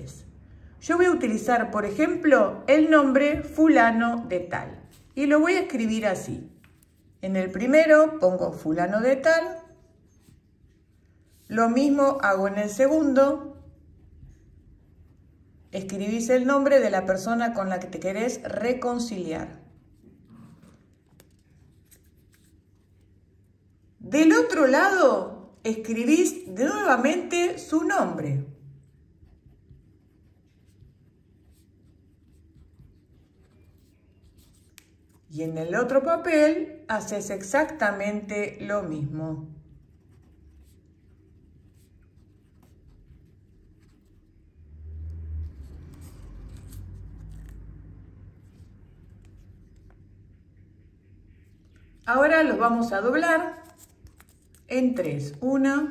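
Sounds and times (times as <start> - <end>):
marker pen scratching on paper: 1.8 - 36.4, 37.4 - 44.6, 45.4 - 55.9
paper rustling: 19.6 - 23.3, 28.9 - 35.3, 45.6 - 50.1, 53.5 - 55.4.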